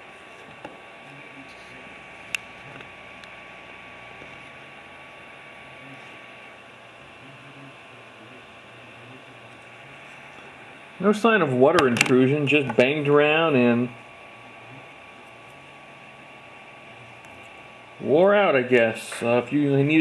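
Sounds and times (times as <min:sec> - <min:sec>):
background hiss and hum: 0:00.0 - 0:20.0
faint steady whine: 0:00.0 - 0:20.0.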